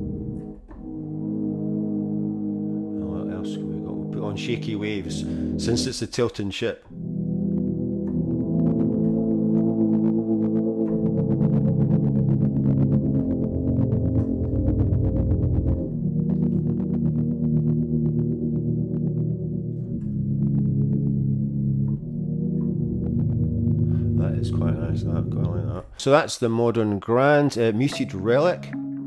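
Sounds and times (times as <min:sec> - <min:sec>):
piano chords with wobble effect: 0:00.0 - 0:06.1, 0:06.9 - 0:26.0, 0:27.8 - 0:29.0.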